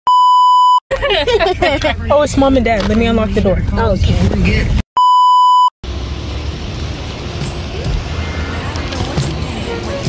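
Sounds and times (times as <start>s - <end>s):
electronic censor bleep: 0.1s - 0.8s, 5.0s - 5.7s.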